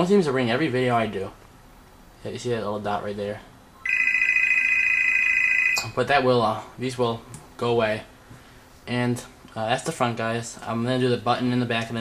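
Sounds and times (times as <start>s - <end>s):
telephone ringing: 3.8s - 5.9s.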